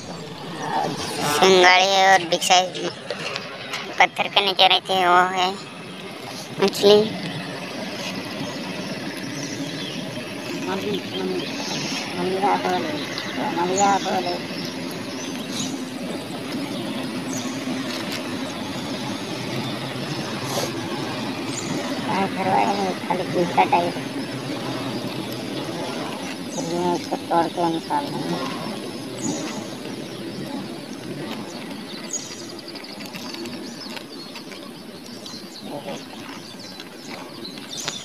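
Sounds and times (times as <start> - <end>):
motor running: 0.0 - 38.0
small bird singing: 0.0 - 38.0.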